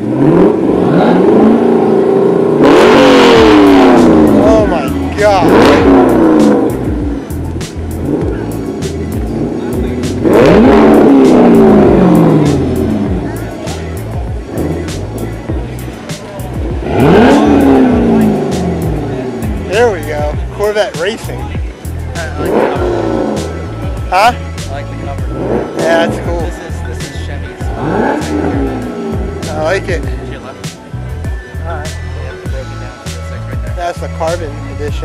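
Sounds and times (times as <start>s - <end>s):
car engine revving: 0.0s - 35.0s.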